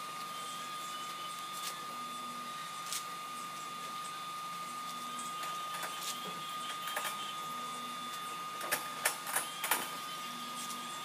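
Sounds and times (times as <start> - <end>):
high-pitched whine: 0.0 - 11.0.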